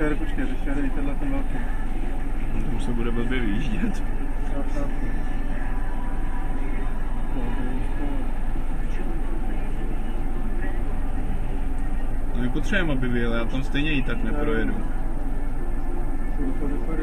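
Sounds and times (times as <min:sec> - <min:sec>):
bus engine drone: 0:00.0 - 0:17.0
faint voices: 0:00.0 - 0:17.0.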